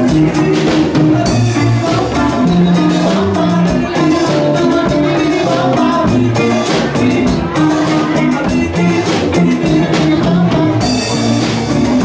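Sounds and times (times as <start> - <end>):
bass guitar: 0.0 - 12.0
congas: 0.0 - 12.0
drum kit: 0.0 - 12.0
electric guitars: 0.0 - 12.0.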